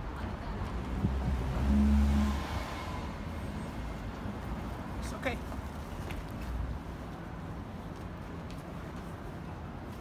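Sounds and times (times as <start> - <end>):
traffic rumble: 0.0 - 10.0
vehicle engine passing by: 0.8 - 3.9.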